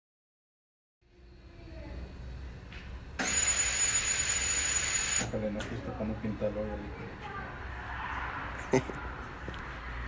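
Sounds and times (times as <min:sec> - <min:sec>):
air hissing with high whistle: 0:03.2 - 0:05.3.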